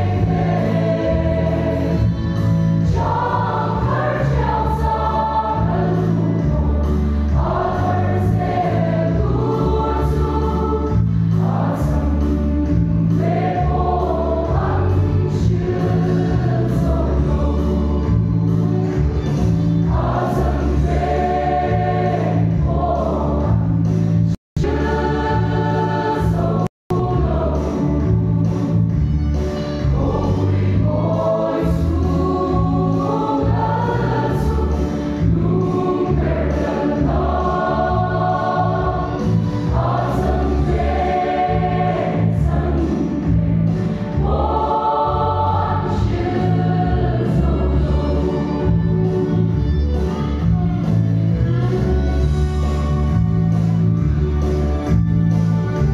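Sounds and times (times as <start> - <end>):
choir singing a hymn: 0.0 - 29.1, 29.8 - 49.6.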